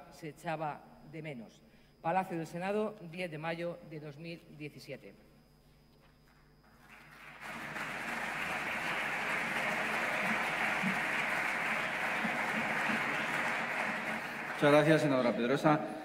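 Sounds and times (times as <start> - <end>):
crowd applauding: 6.7 - 15.6.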